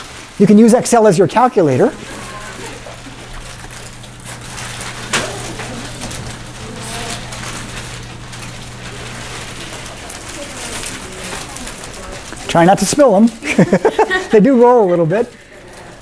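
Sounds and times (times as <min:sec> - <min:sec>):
packets rustling: 0:00.0 - 0:16.0
steady low hum: 0:00.0 - 0:16.0
candy clicking on desks: 0:00.4 - 0:14.2
murmur of voices: 0:01.2 - 0:16.0.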